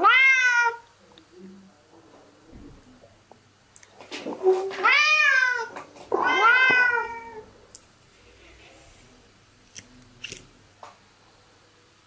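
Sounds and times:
cat meowing: 0.0s - 0.8s, 4.6s - 7.5s.

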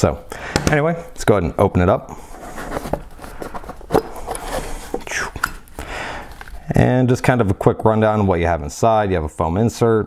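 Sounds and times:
cardboard scraping: 2.2s - 5.3s.

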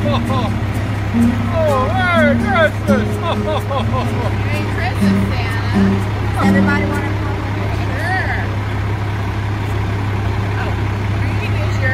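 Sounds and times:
diesel engine idling: 0.0s - 11.9s
faint voices: 0.0s - 11.9s.

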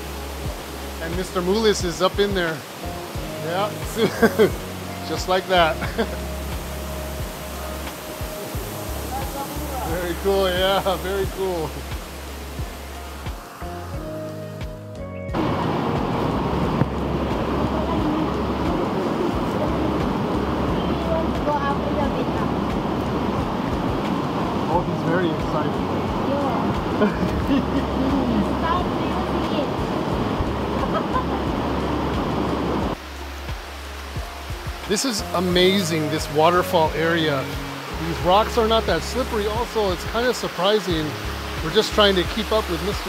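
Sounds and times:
waterfall rushing over rocks: 0.0s - 14.8s, 15.4s - 43.0s
background music with held notes: 0.0s - 43.0s.

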